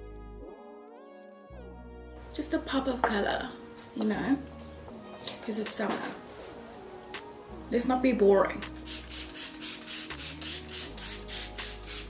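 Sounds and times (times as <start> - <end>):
soft background music: 0.0 - 12.0
mist spray spritzes: 8.9 - 12.0.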